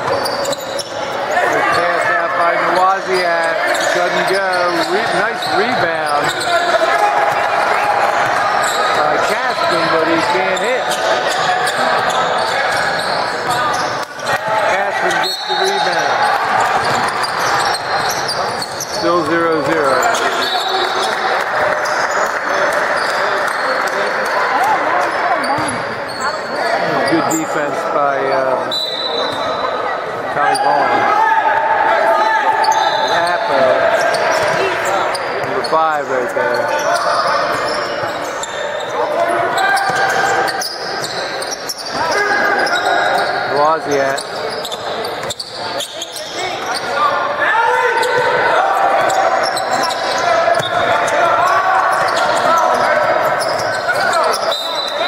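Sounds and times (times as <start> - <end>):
echoing voices in gym: 0.0 - 55.0.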